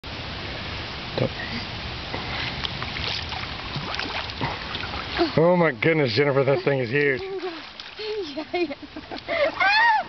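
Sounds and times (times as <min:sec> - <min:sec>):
water splashing and churning: 0:00.1 - 0:10.0.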